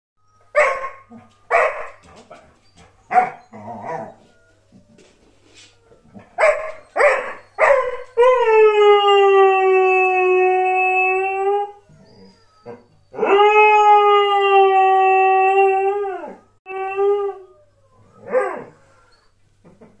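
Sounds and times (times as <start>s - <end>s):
dog barking: 0.6s - 2.0s, 3.1s - 4.1s, 6.4s - 8.0s
dog howling: 3.0s - 19.4s.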